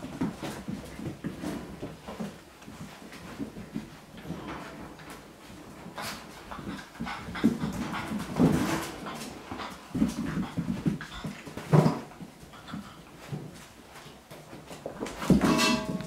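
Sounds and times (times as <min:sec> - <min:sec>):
puppies scuffling: 0:00.0 - 0:16.0.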